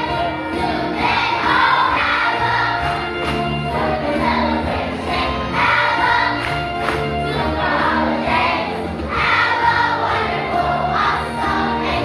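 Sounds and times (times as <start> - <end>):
children's choir singing: 0.0 - 12.0
instrumental accompaniment: 0.0 - 12.0.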